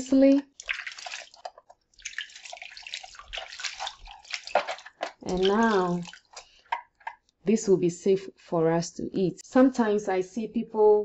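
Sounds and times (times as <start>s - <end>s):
water splashing in a bowl: 0.0s - 7.1s.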